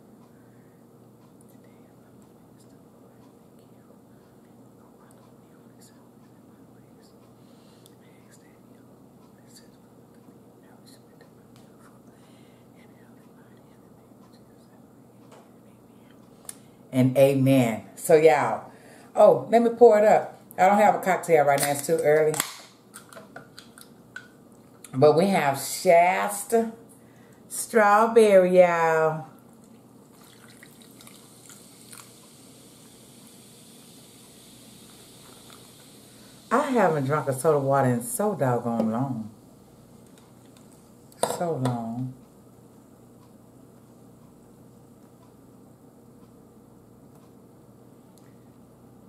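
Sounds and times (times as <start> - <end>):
woman whispering: 1.4 - 16.4
liquid dripping: 29.6 - 32.3
soda pouring over ice: 30.1 - 32.2.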